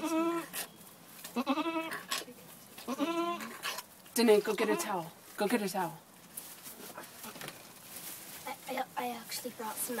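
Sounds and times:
goat bleating: 0.0 - 0.6, 1.2 - 2.2, 2.8 - 3.7, 4.5 - 5.1.

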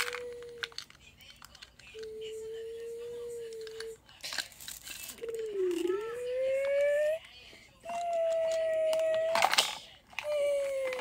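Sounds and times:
child humming steady tone: 0.0 - 0.8, 2.0 - 4.0, 5.2 - 7.2, 10.2 - 11.0
plastic toy parts clattering: 0.0 - 2.1, 3.5 - 6.0, 7.9 - 11.0.

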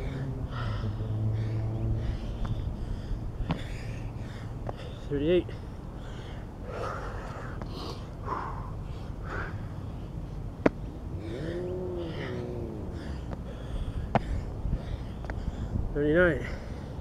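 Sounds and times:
man breathing hard: 0.0 - 10.3, 11.1 - 17.0
man groaning: 11.1 - 13.2.

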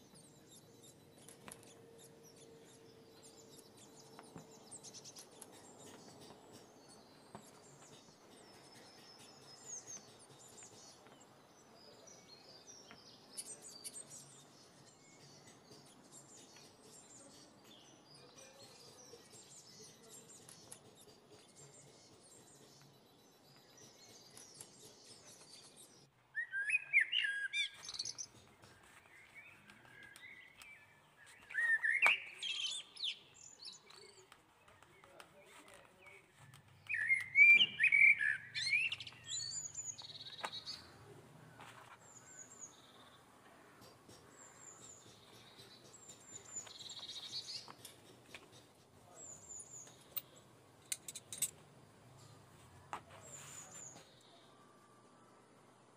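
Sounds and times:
small birds chirping: 0.0 - 55.9.

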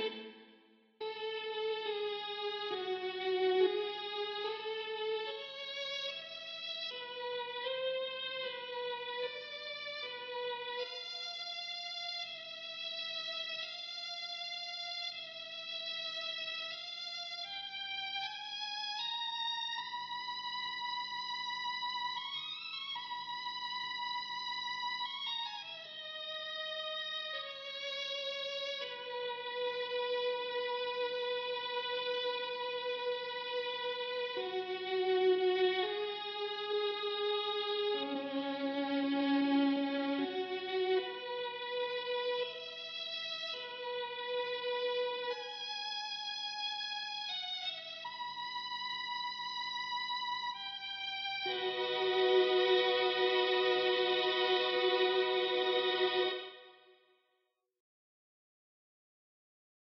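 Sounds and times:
string melody with reverb: 0.0 - 57.0.

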